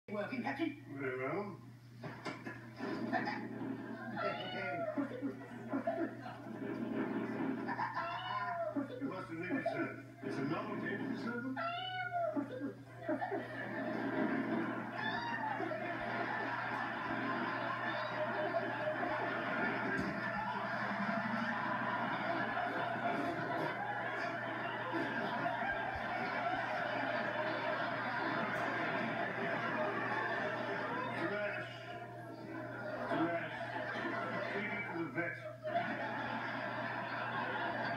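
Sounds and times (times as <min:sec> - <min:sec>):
low mains hum: 0:00.1 - 0:37.9
studio audience laughing: 0:02.0 - 0:04.2, 0:05.0 - 0:08.0, 0:12.9 - 0:37.9
cat meowing: 0:04.2 - 0:05.0, 0:11.6 - 0:12.4, 0:15.0 - 0:15.5.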